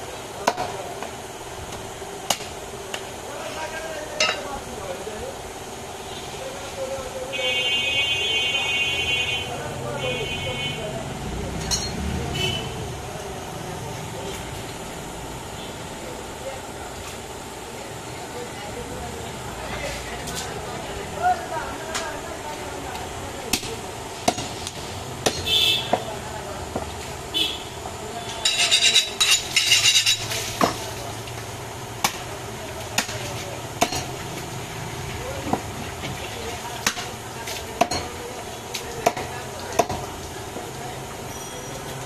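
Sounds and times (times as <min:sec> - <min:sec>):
traffic hum: 0:00.0 - 0:42.0
heavy knife chopping on wood: 0:23.5 - 0:24.6, 0:25.2 - 0:26.1, 0:33.0 - 0:34.1.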